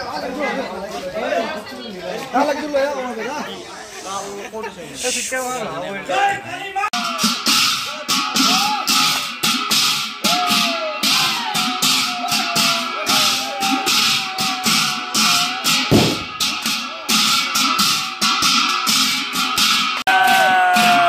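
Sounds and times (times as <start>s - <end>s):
brass hand cymbals clashing: 7.0s - 20.0s
heavy low thump: 15.9s - 16.4s.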